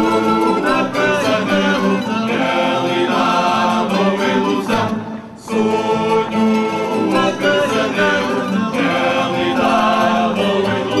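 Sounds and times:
group singing in chorus: 0.0 - 11.0
plucked guitars and mandolins: 0.0 - 11.0.

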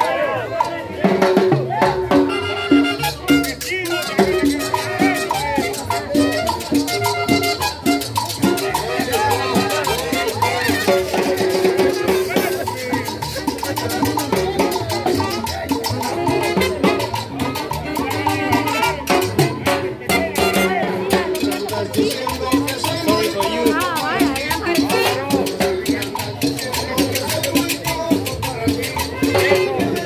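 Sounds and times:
steady drum beat: 0.0 - 30.0
street band playing latin music: 0.0 - 30.0.

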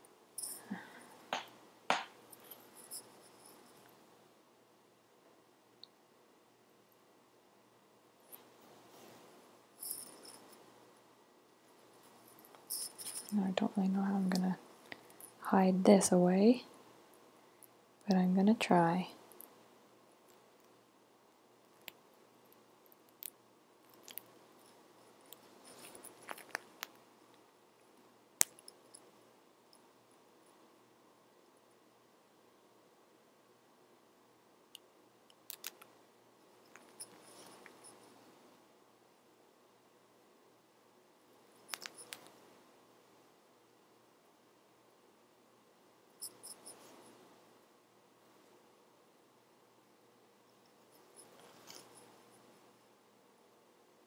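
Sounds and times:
scratchy yarn rustles: 8.2 - 10.7, 11.6 - 16.6, 23.9 - 27.4, 50.5 - 52.5
crochet clicks and ticks: 21.7 - 24.4, 28.4 - 28.8, 34.7 - 36.0, 41.6 - 42.4.

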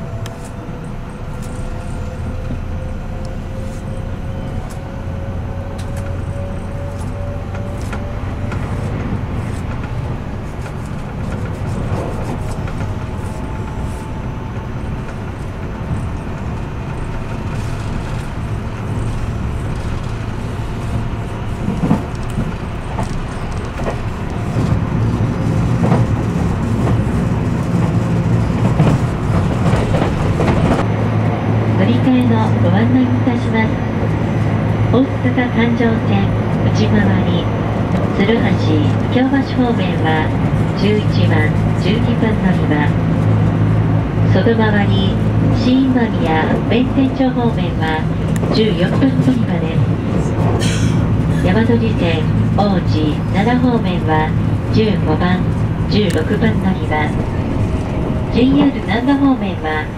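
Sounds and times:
train rumbling inside carriage: 0.0 - 59.9.

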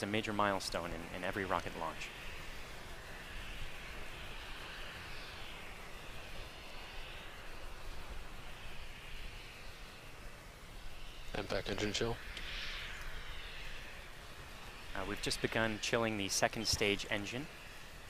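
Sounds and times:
distant rocket engines roaring: 0.0 - 18.0.

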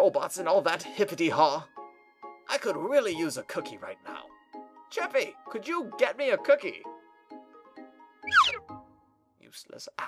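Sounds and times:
soft background music: 0.0 - 10.0
owl squawk falling in pitch: 8.2 - 8.6.

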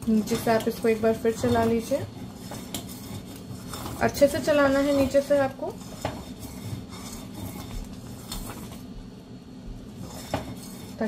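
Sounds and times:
spoon stirring and scraping a pan: 0.0 - 9.0, 9.7 - 11.0.

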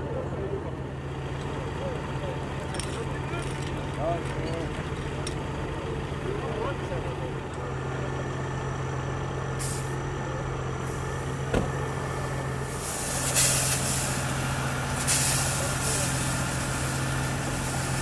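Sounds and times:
fire engine running: 0.0 - 18.0
sharp knock: 11.5 - 11.8
hose spraying water: 12.5 - 18.0.

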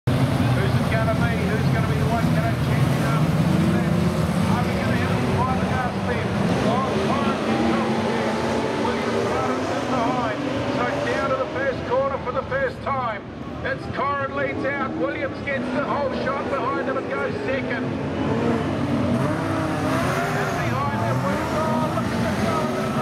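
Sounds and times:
race car engines roaring: 0.1 - 23.0.

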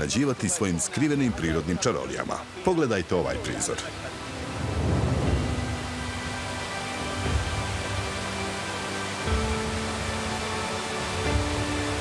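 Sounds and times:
background music sustained notes: 0.0 - 12.0
waterfall rushing: 0.0 - 12.0.

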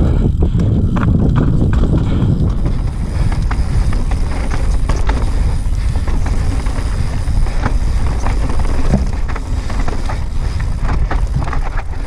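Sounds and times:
bike clicks and rattles: 0.0 - 12.0
bike tyre noise on dirt: 0.0 - 12.0
wind rumbling on microphone: 0.0 - 12.0.

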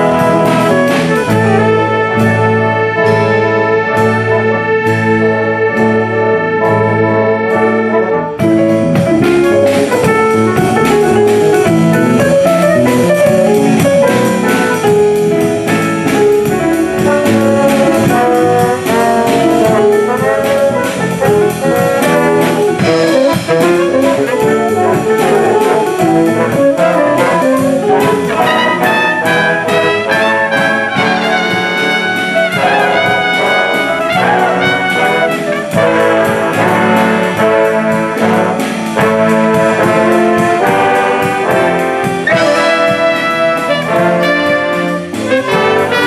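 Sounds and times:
big band playing swing jazz: 0.0 - 46.0.

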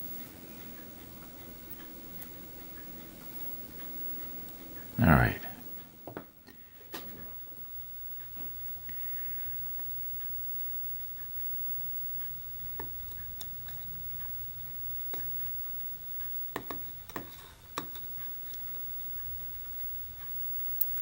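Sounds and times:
faint low hum: 0.0 - 21.0
tweezers clicking and tapping: 11.0 - 21.0.

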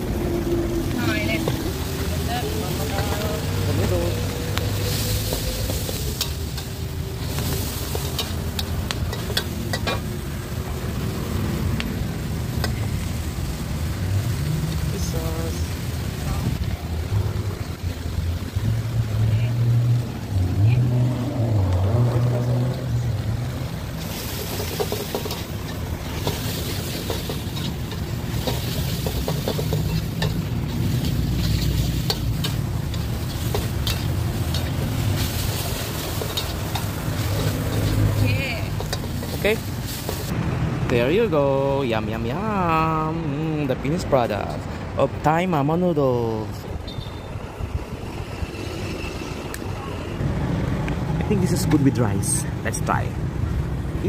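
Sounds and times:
food sizzling: 0.0 - 40.5
metal spatula scraping a wok: 24.0 - 40.3.

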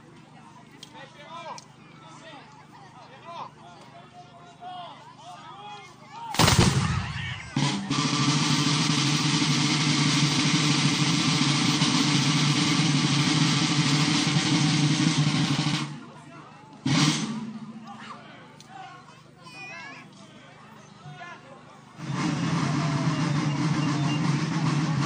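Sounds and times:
musket shots: 6.3 - 7.6
drum roll or rolling fire: 6.3 - 16.1, 16.8 - 17.8, 22.0 - 25.0.

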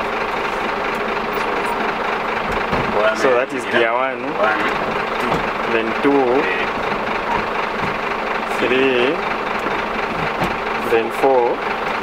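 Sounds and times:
diesel engine idling: 0.0 - 12.0
low thump: 2.4 - 3.0.

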